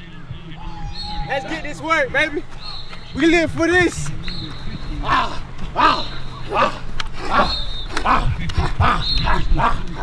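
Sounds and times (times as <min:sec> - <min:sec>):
young men shouting: 0:00.6 - 0:10.0.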